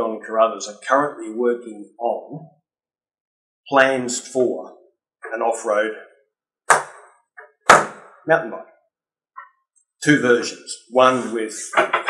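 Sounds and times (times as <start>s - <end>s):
sharp loud knocks: 6.7s - 8.1s.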